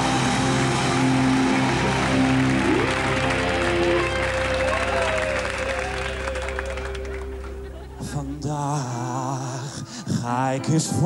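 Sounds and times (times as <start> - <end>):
audience applause: 0.0 - 8.3
live band playing held chords: 0.0 - 9.6.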